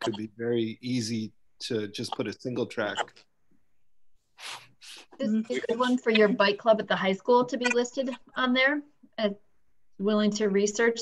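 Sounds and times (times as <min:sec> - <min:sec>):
man speaking: 0:00.0 - 0:03.2, 0:04.8 - 0:06.5.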